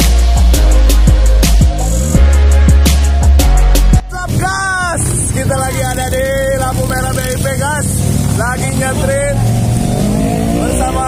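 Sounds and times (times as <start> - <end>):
street traffic rumble: 0.0 - 11.0
man's drawn-out voice: 4.0 - 9.4.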